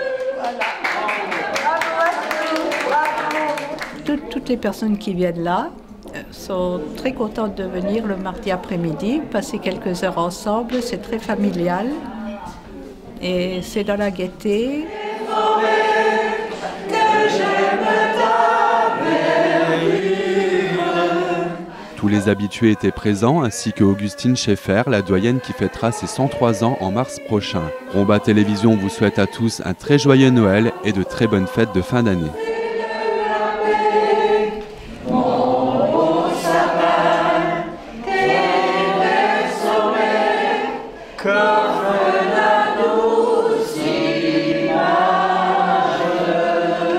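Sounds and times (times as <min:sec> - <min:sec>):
group of voices singing a carol: 0:00.0 - 0:01.4, 0:14.4 - 0:46.9.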